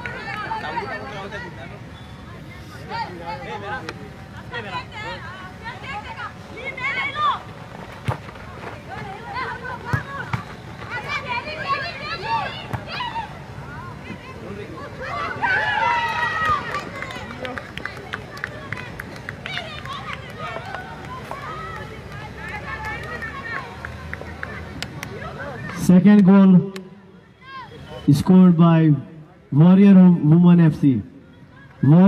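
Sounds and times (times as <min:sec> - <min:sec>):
players and spectators shouting: 0:00.0 - 0:07.6, 0:08.8 - 0:32.0
crowd chatter: 0:00.0 - 0:32.0.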